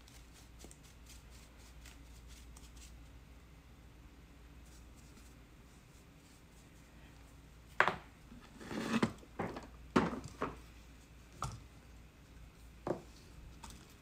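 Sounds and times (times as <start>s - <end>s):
plastic tub scraping: 8.4s - 9.6s.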